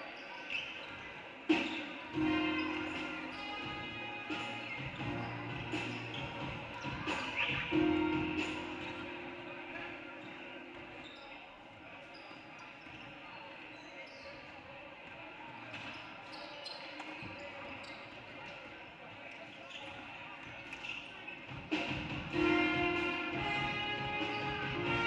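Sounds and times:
murmur of voices echoing: 0.0 - 25.0
shoe squeaks: 0.1 - 14.6, 15.8 - 18.4, 19.5 - 21.5.

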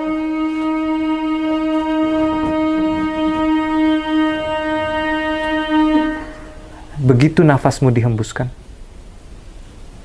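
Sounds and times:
steady drone note: 0.0 - 7.7.

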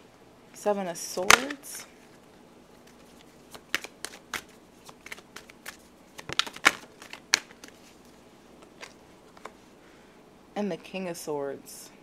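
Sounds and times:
cards being shuffled: 2.8 - 9.6.

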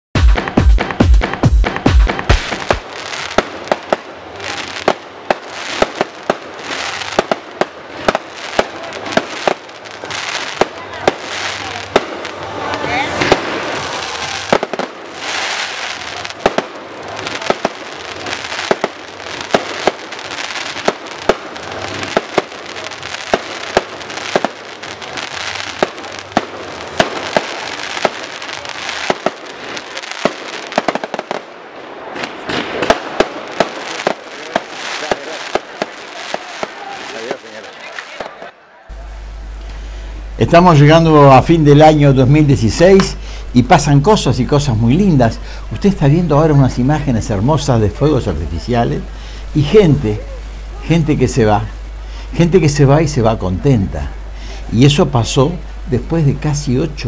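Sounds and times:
fireworks bangs: 0.2 - 57.0
fireworks crackling: 0.2 - 57.0.

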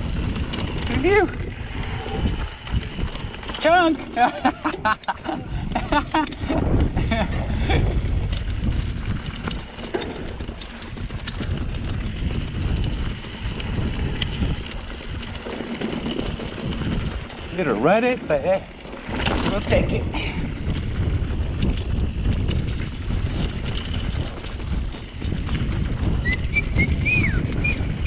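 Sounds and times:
bike rattling: 0.0 - 28.0
bike tyres on dirt: 0.0 - 28.0
wind on microphone: 0.0 - 28.0
person laughing: 4.2 - 8.1.

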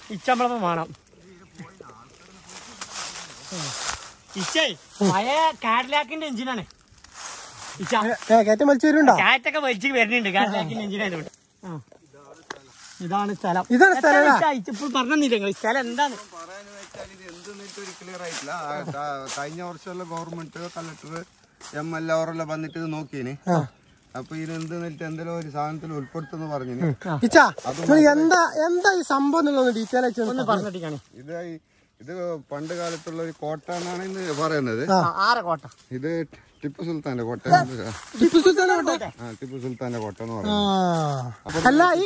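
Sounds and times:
man speaking: 0.0 - 6.7, 7.8 - 42.0
man talking: 0.0 - 6.7, 7.6 - 42.0.

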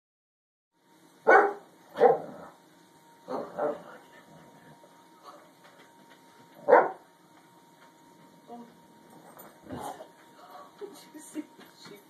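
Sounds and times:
dog barking: 1.3 - 2.4, 3.3 - 3.9, 6.6 - 7.0.

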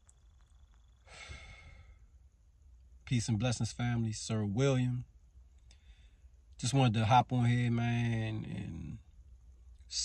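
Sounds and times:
man sighing softly: 1.1 - 2.0.

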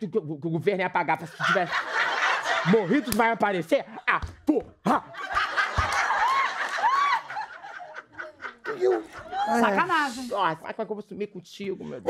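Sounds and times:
audience laughing: 1.3 - 3.4, 4.9 - 10.2.

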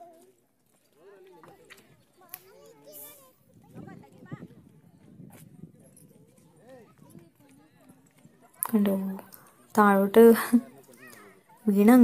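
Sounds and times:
faint distant voices talking: 0.0 - 12.0.

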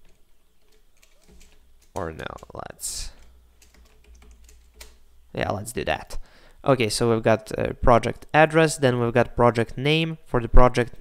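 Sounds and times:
computer keyboard keystrokes: 0.0 - 2.5, 3.2 - 5.0.

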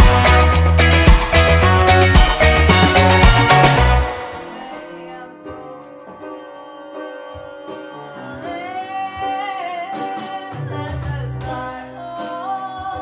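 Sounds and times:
bass notes: 0.0 - 4.5
drums: 0.0 - 5.1, 9.2 - 13.0
guitar: 0.0 - 13.0
woman singing: 4.2 - 13.0.

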